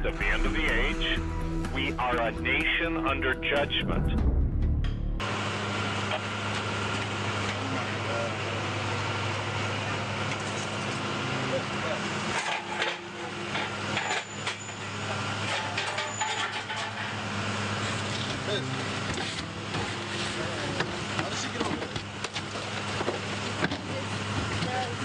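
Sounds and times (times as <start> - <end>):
indistinct voices: 0.0 - 4.2.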